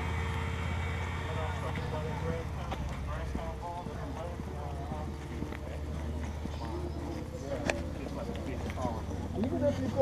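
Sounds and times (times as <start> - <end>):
steady low rumble: 0.0 - 8.2
faint voices chatting: 0.8 - 10.0
footsteps on concrete: 1.6 - 10.0.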